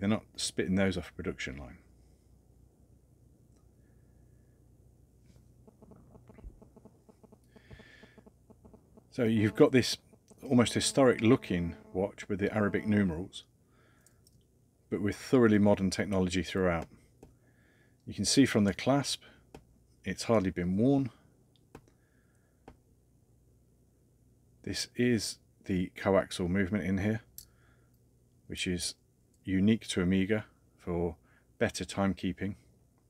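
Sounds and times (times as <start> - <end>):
faint watch ticking: 3.5 - 22.8.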